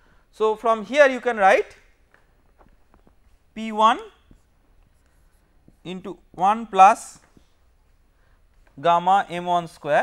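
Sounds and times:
person speaking: 0.3s - 7.5s, 8.6s - 10.0s.

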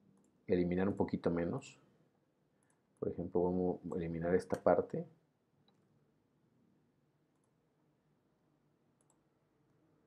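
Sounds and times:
computer mouse clicks: 4.4s - 4.7s, 7.3s - 7.6s, 9.0s - 9.3s.

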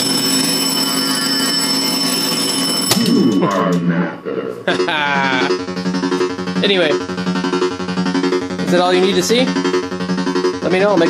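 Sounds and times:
pinball machine bell ringing: 0.0s - 3.6s.

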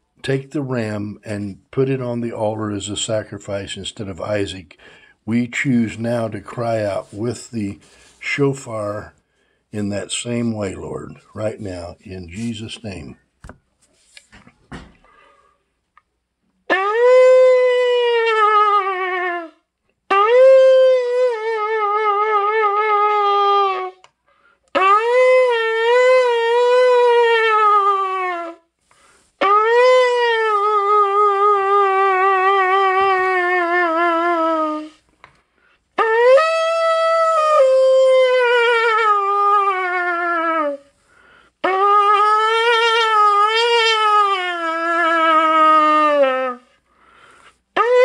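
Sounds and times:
shofar blasts: 16.7s - 24.0s, 24.7s - 28.6s, 29.4s - 35.0s, 36.0s - 40.8s, 41.6s - 46.6s, 47.8s - 48.0s.

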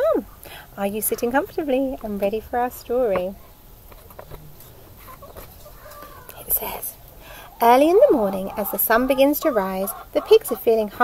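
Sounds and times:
chickens clucking: 0.2s - 11.0s.

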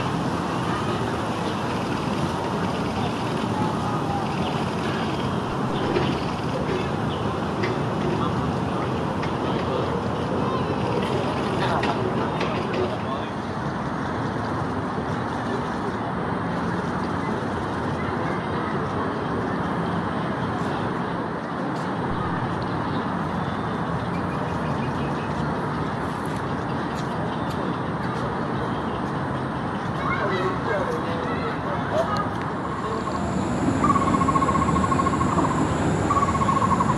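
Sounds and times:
distant indistinct voices: 0.0s - 36.9s.

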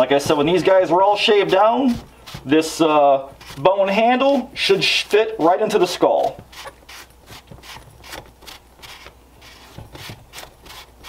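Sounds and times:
pipe scraping in foam: 0.0s - 11.0s.

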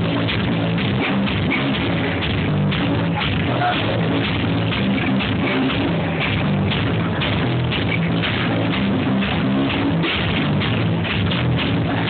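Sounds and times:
bass guitar: 0.0s - 12.0s
drums: 0.0s - 12.0s.

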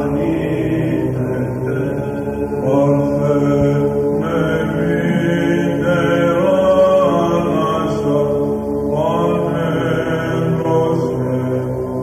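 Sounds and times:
chanted hymn over held drone: 0.0s - 12.0s.

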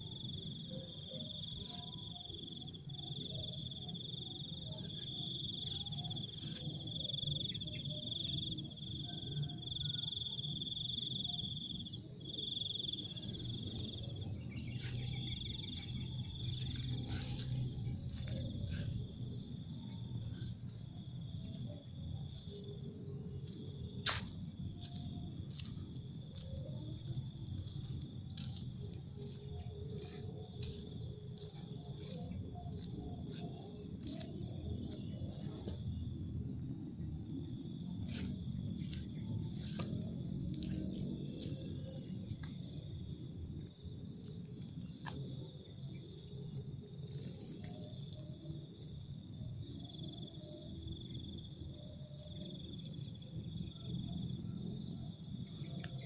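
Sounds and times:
insects trilling: 0.0s - 56.0s
low outdoor rumble: 11.6s - 49.9s.

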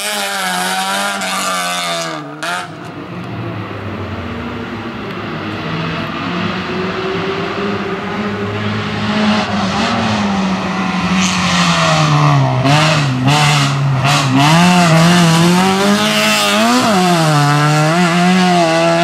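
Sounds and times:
race car engine revving: 0.0s - 19.0s.

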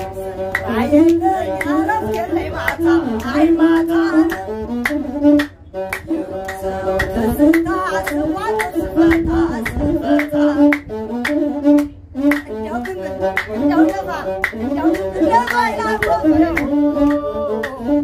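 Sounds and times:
man and woman singing: 0.0s - 4.8s, 6.1s - 10.8s, 15.0s - 18.0s
bowed fiddle melody: 0.0s - 18.0s.

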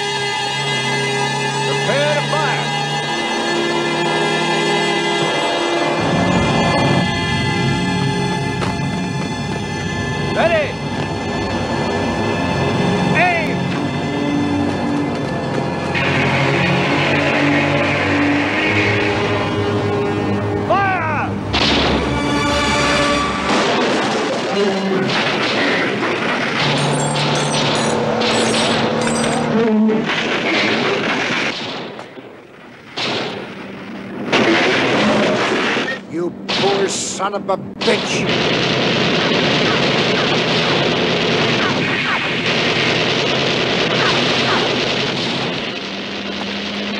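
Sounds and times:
movie music: 0.0s - 46.9s
loud blasts: 15.8s - 19.9s, 21.4s - 46.9s
heavy gunfire: 21.5s - 22.2s, 23.4s - 28.9s, 30.0s - 37.1s, 37.8s - 46.9s.

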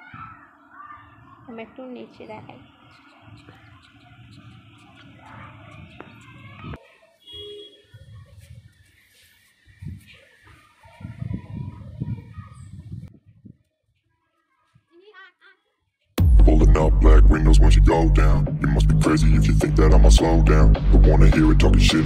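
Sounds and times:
wind noise on microphone: 4.2s - 6.8s, 7.9s - 8.9s, 9.6s - 13.6s.

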